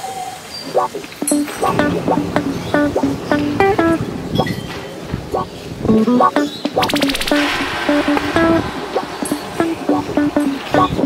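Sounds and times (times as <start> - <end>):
guitar plucking notes: 0.8 - 4.5, 5.3 - 11.0.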